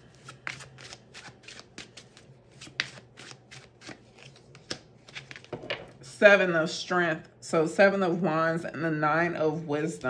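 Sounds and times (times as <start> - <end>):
cards being shuffled: 0.0 - 5.7.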